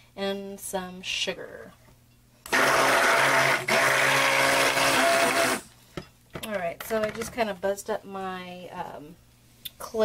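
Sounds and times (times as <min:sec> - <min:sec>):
stick blender running: 0:02.5 - 0:05.7.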